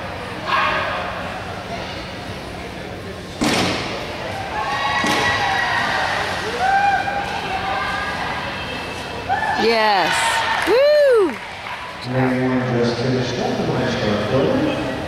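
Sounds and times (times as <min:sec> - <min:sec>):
sharp bangs in a large hall: 0:03.4 - 0:04.3, 0:05.0 - 0:05.6.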